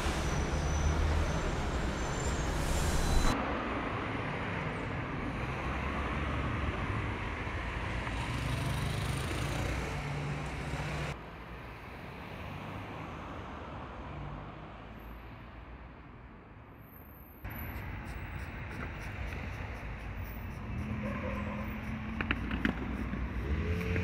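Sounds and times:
motor vehicles passing: 0.0s - 11.2s, 17.5s - 24.0s.

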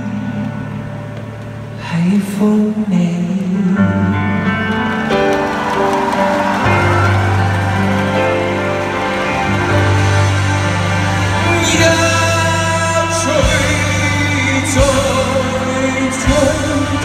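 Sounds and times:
live band playing pop ballad: 0.0s - 17.0s.

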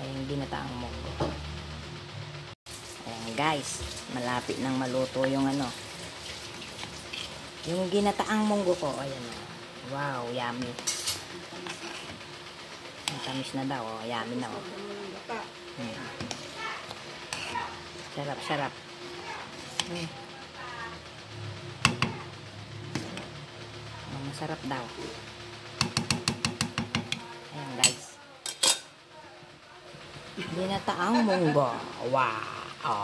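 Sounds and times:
metal ladle scraping a pot: 5.5s - 7.5s, 10.6s - 12.3s, 15.8s - 18.4s, 27.8s - 28.9s
metal spoon tapping cooking pot: 21.8s - 22.2s, 25.8s - 27.2s.

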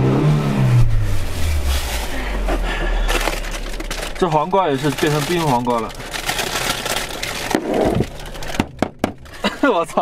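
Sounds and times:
crackling and scraping on plastic: 3.0s - 9.3s.

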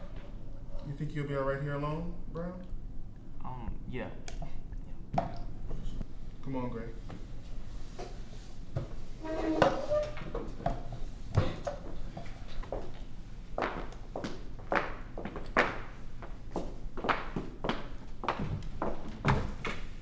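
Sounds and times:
footsteps on hard floor: 11.4s - 19.9s.

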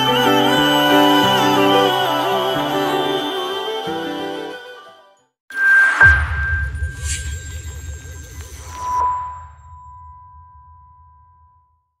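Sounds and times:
musical swell: 0.0s - 5.2s.

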